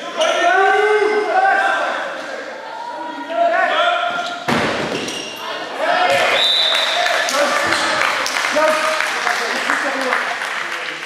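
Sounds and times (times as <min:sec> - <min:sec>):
players shouting in a sports hall: 0:00.0 - 0:09.5.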